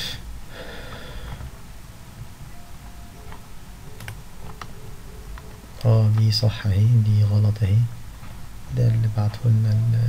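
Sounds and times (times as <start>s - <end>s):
low steady background hum: 0.0s - 10.0s
sharp computer clicks: 3.2s - 6.4s.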